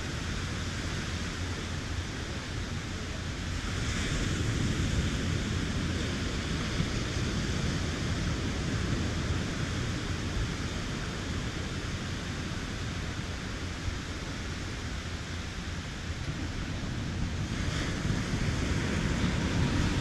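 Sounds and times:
ocean surf: 0.0s - 20.0s
wind buffeting microphone: 15.3s - 20.0s.

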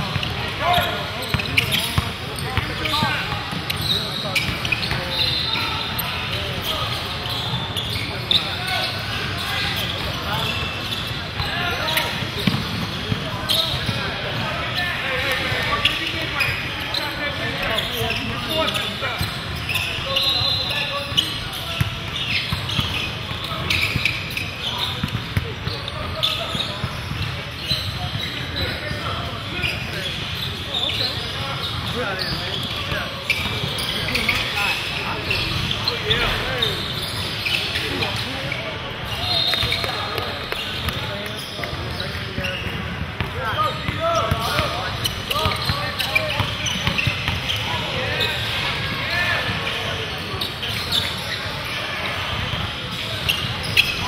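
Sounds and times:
indistinct chatter: 0.0s - 54.0s
basketball bouncing on wooden floor: 12.4s - 13.2s.

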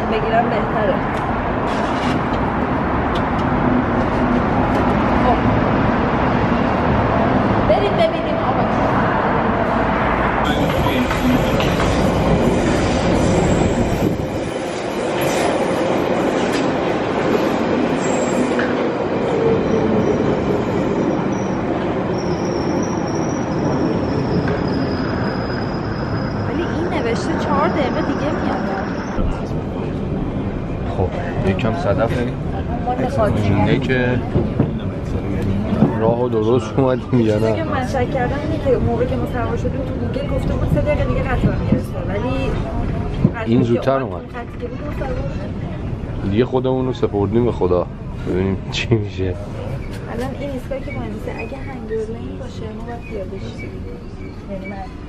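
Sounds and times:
rumble of train wheels: 0.0s - 55.0s
thin high train squeal: 10.8s - 16.7s, 17.4s - 29.5s, 49.6s - 55.0s.

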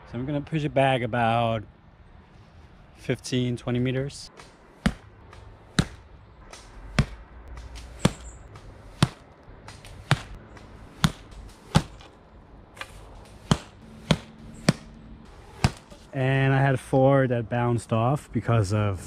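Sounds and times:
arrows striking mattress target: 4.4s - 12.2s, 12.8s - 16.1s.

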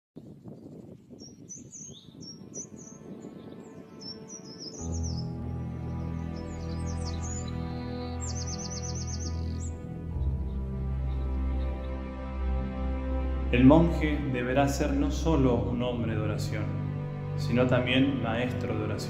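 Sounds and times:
small birds chirping: 0.2s - 12.1s
soft music with low notes: 1.6s - 19.0s.

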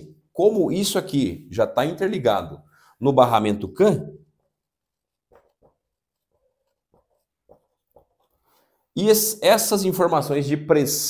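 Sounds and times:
marker scratching on whiteboard: 4.3s - 8.9s.

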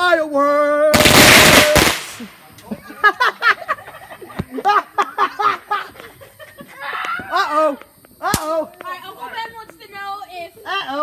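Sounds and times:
person laughing: 2.6s - 7.5s
sharp pop: 8.2s - 8.6s.

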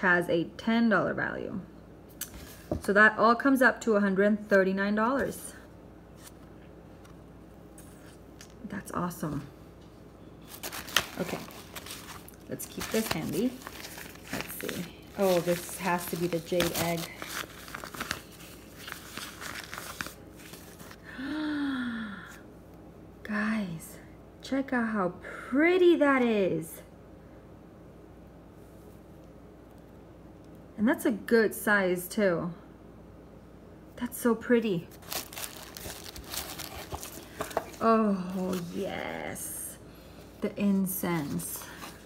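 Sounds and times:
fabric pouch rustling: 10.4s - 21.0s, 34.9s - 37.8s
tissue paper crinkling: 10.4s - 21.0s, 34.9s - 39.1s, 41.0s - 42.0s.

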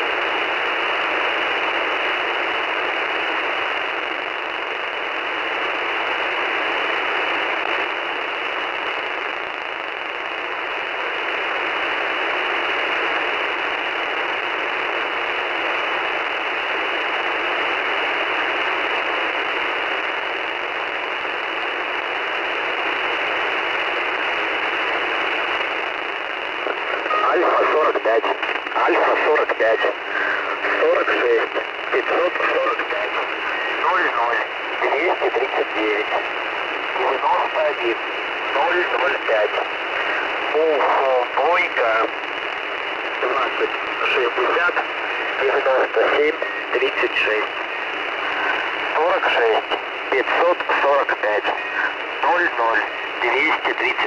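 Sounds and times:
radio static hiss: 0.0s - 54.0s
voice reading over radio: 26.6s - 42.2s, 43.0s - 54.0s.

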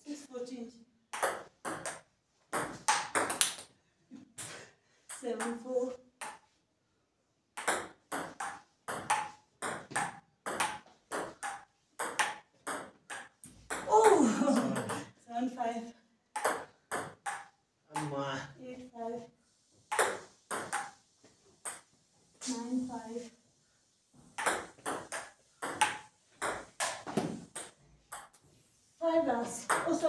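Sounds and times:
ping pong ball clicking: 1.1s - 2.0s, 7.6s - 13.9s, 16.4s - 18.1s, 19.9s - 21.0s, 24.4s - 28.4s
person crying out: 13.9s - 14.9s.

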